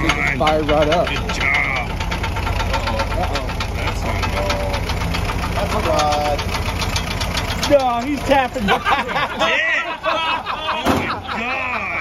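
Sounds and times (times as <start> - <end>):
engine idling: 0.0 - 12.0
fast engine ticking: 0.0 - 12.0.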